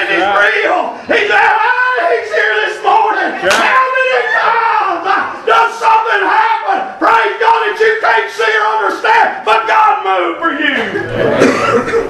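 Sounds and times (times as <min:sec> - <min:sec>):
preacher shouting: 0:00.0 - 0:10.8
congregation calling out: 0:00.0 - 0:12.0.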